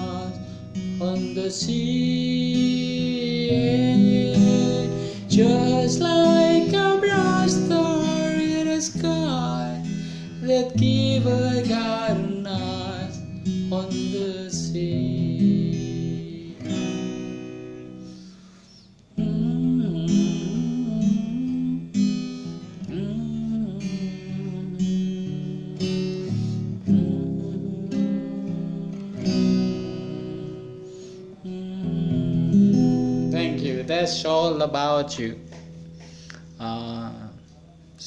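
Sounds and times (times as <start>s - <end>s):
acoustic guitar strumming: 0.0s - 38.0s.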